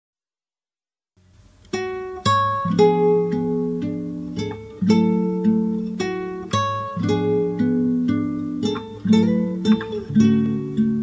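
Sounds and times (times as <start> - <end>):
faint hiss: 1.2 - 11.0
plucked guitar note: 1.8 - 11.0.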